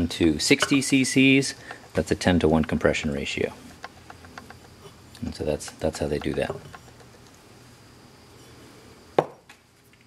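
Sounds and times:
metal part knocking on wooden bench: 3.6s - 4.9s, 5.6s - 7.3s.

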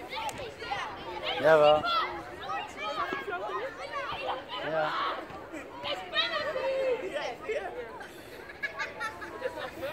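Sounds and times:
children's voices: 0.0s - 9.9s
voices chattering: 0.0s - 9.9s.

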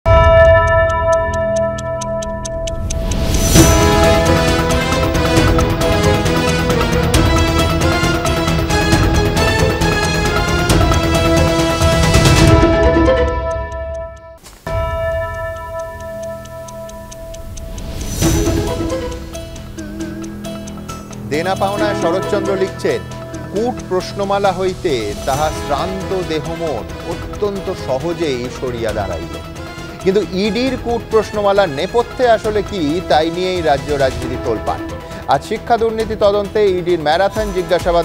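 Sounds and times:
clock-like ticking: 0.1s - 38.0s
news intro synth music: 0.1s - 38.0s.

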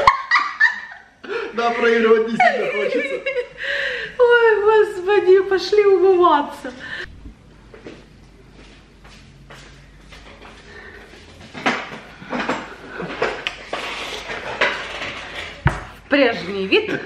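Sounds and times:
knocks and bumps at a table: 15.6s - 16.0s.

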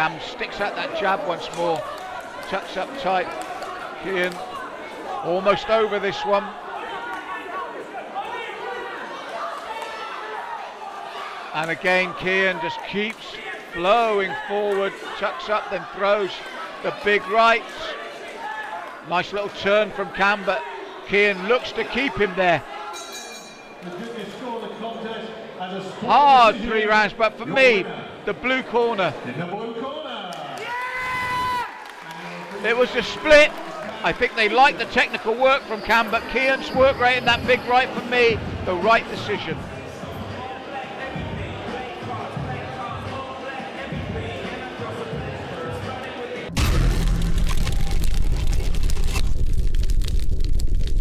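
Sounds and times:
background music: 36.8s - 47.4s
whooshing crackling noise: 46.6s - 51.0s.

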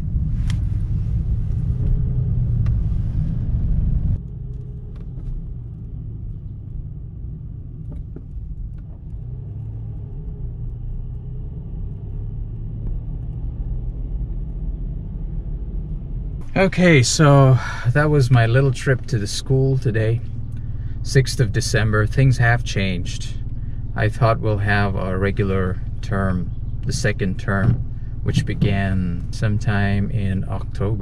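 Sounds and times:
road and engine rumble inside car: 0.0s - 31.0s.

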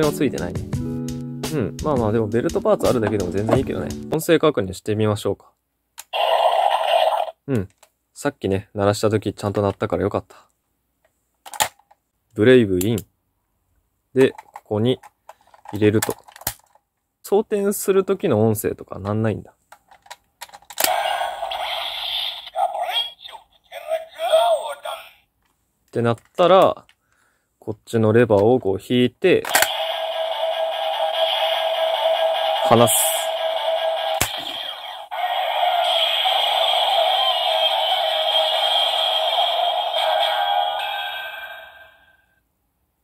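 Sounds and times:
toy electronic sound effect: 6.1s - 7.4s, 20.8s - 25.2s, 29.5s - 42.3s
plastic toy clicks and snap: 11.4s - 12.0s, 15.3s - 16.8s, 19.7s - 21.1s, 29.4s - 30.1s, 33.8s - 34.8s.

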